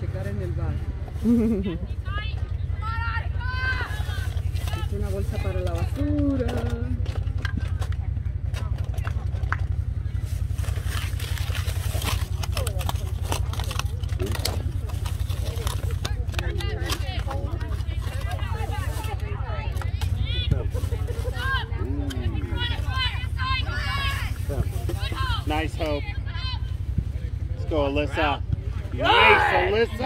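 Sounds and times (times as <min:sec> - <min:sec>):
distant shouts and chatter: 0:00.0 - 0:30.0.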